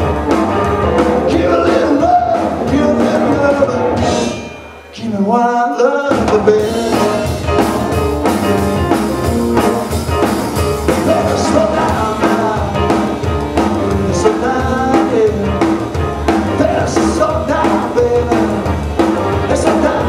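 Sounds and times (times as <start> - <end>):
rock band playing: 0.0 - 20.0.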